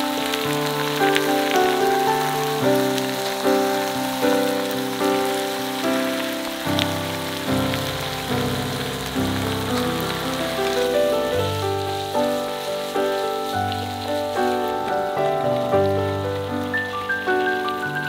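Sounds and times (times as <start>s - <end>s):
background music melody: 0.0s - 18.0s
food sizzling in a frying pan: 0.0s - 18.0s.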